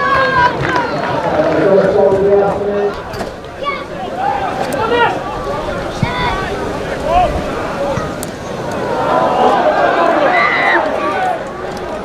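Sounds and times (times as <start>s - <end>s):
crowd noise: 0.0s - 12.0s
people shouting calls: 0.0s - 12.0s.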